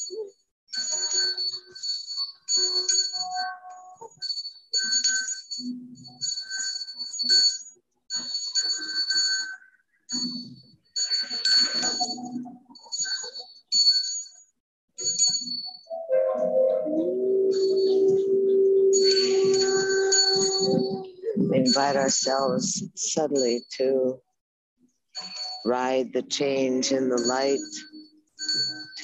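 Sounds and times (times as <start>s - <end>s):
metal hand bell ringing: 18.8s - 22.5s.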